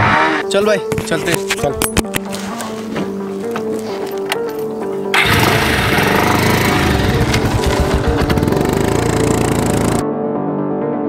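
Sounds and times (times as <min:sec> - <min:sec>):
background music: 0:00.0 - 0:11.0
motorcycle engine revving: 0:05.2 - 0:10.0.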